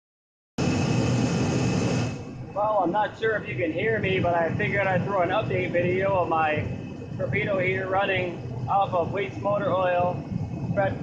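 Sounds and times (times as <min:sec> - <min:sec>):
heater blower rushing: 0:00.6 - 0:11.0
thin high whine: 0:00.6 - 0:11.0.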